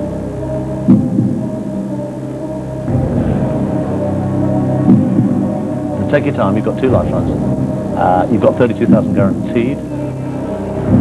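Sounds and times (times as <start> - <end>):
loud music beat: 0.0 - 11.0
suspense music drone: 0.0 - 11.0.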